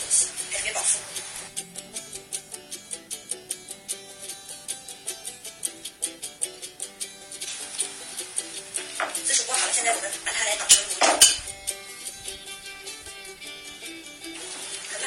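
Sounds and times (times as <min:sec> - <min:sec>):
plucked-string background music: 0:00.0 - 0:15.0.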